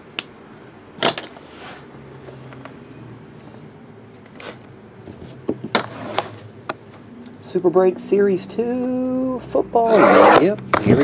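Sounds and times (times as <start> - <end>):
box sliding across table: 1.4 - 1.9, 5.2 - 6.4.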